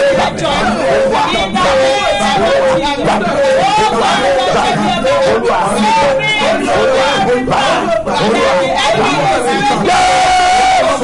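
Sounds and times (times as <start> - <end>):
voices praying aloud: 0.0 - 11.0.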